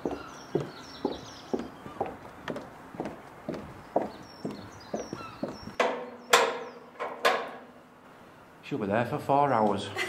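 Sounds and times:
footsteps on wooden planks: 0:00.0 - 0:07.2.

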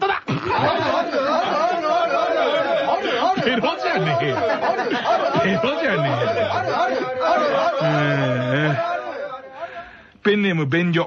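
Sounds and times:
voices chanting in chorus: 0:00.6 - 0:09.8.

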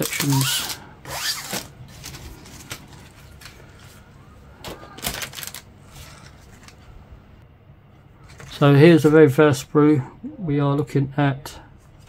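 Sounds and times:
plastic sprues rustling and scraping: 0:00.0 - 0:06.9, 0:08.2 - 0:09.1.

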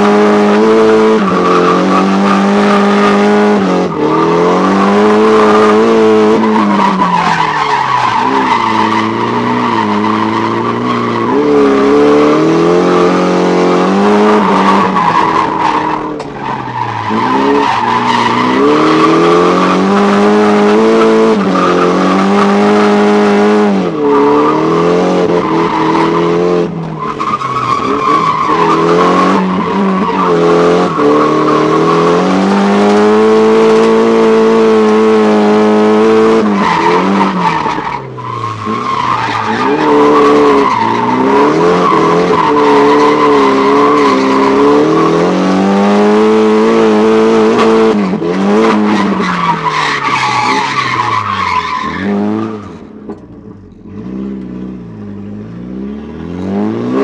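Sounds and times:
car engine at high revs: 0:00.0 - 0:57.0.

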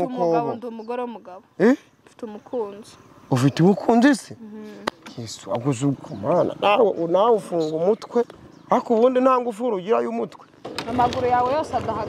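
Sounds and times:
man talking: 0:05.1 - 0:10.4.

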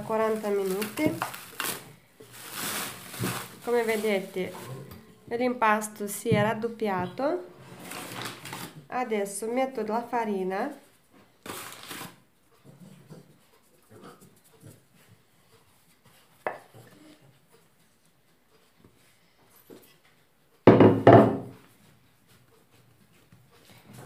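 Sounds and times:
dough rubbing and scraping: 0:00.0 - 0:08.8.

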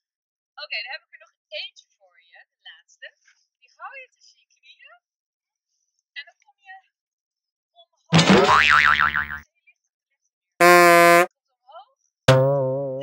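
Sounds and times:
cartoon wobbling boing: 0:08.2 - 0:09.4, 0:12.3 - 0:13.0
twanging plucked note: 0:08.2 - 0:09.4, 0:12.3 - 0:13.0
short flat buzzing tone: 0:10.6 - 0:11.3.

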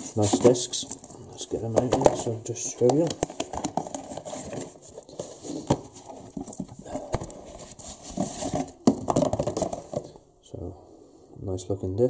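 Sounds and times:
cardboard packaging rustling: 0:00.0 - 0:10.2.

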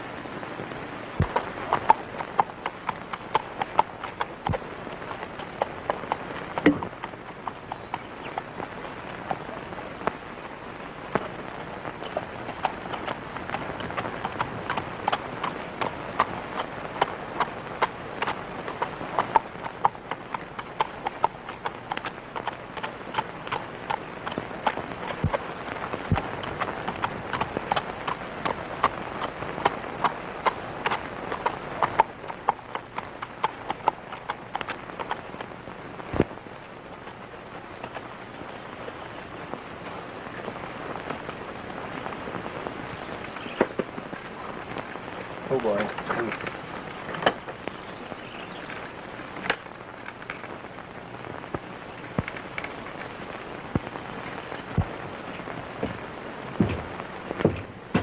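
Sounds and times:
film soundtrack hiss: 0:00.0 - 0:58.0
horse hooves clip-clopping: 0:00.6 - 0:58.0.

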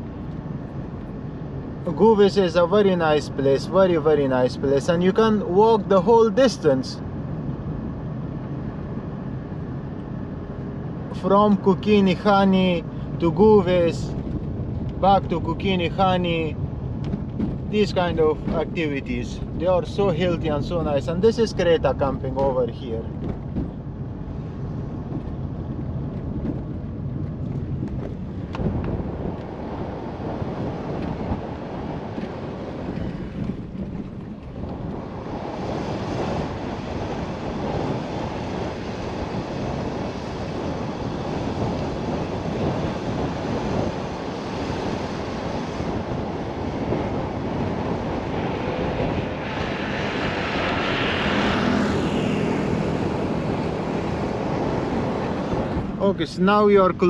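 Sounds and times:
car tyre and engine noise: 0:00.0 - 0:57.0
wind: 0:00.0 - 0:57.0.

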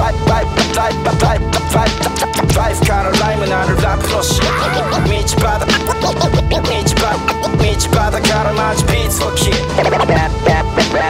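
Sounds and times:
hip hop beat: 0:00.0 - 0:11.0
turntable scratching: 0:01.3 - 0:11.0.

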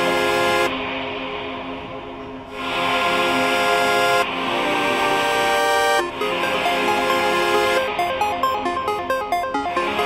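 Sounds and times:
electronic club music: 0:00.0 - 0:01.2, 0:02.5 - 0:10.0.

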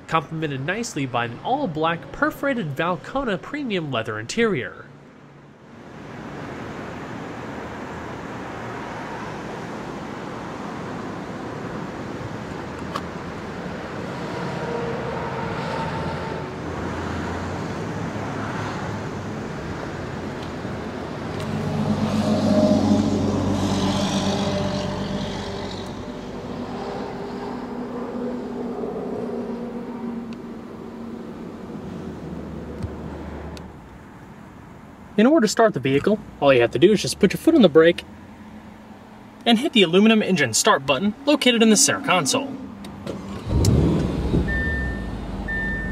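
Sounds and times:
car engine revving and idling: 0:20.4 - 0:33.7, 0:41.8 - 0:45.9.

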